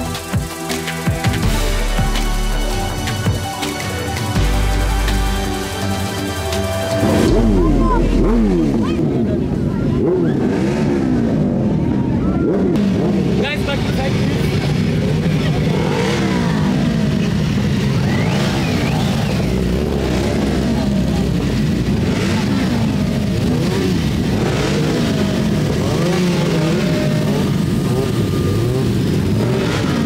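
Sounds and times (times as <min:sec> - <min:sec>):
motorcycle engines revving: 0:00.0 - 0:30.0.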